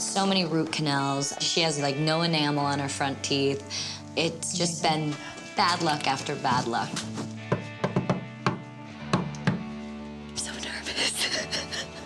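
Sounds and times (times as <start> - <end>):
soft background music: 0.0 - 12.0
knocking on wooden door: 7.5 - 9.7.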